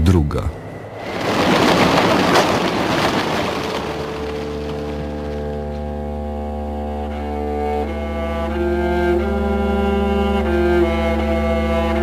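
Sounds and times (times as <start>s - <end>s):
rushing noise: 0.7s - 6.1s
low sustained notes: 3.9s - 12.0s.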